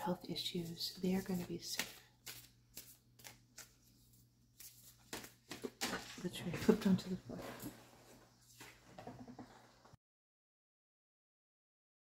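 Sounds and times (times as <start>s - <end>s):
cards being shuffled: 0.7s - 6.2s.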